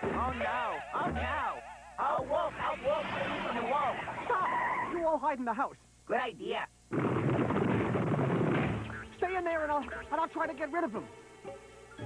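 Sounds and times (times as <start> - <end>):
cartoon rattling clatter of thumps: 6.9 - 9.1.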